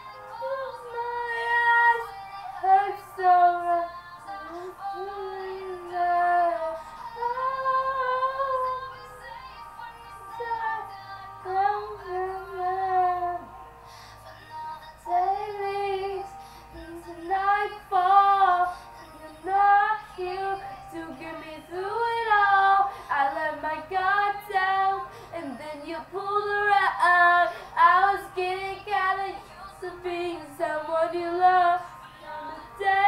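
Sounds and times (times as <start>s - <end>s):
girl singing a pop ballad: 0.0s - 33.0s.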